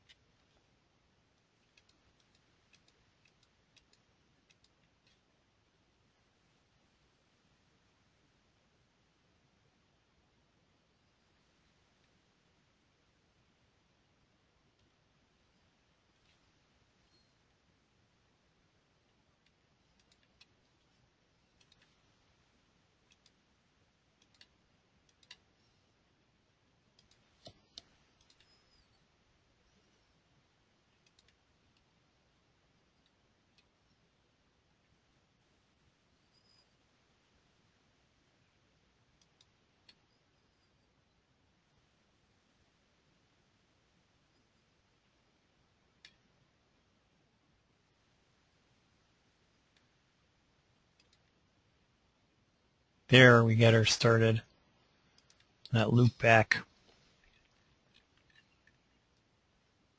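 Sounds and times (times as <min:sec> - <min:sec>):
computer mouse clicks: 0:00.0 - 0:00.7, 0:01.3 - 0:05.3, 0:14.7 - 0:15.0, 0:19.1 - 0:22.1, 0:23.0 - 0:23.4, 0:24.1 - 0:25.7, 0:26.8 - 0:29.0, 0:30.9 - 0:31.9, 0:39.1 - 0:40.8, 0:45.9 - 0:46.3, 0:50.8 - 0:51.4, 0:55.1 - 0:55.7, 0:56.9 - 0:59.3
faint mouse button clicks: 0:26.9 - 0:29.0.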